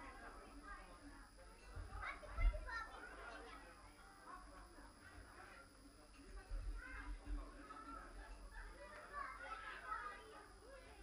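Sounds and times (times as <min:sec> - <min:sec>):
chatter of adults and children: 0:00.0 - 0:11.0.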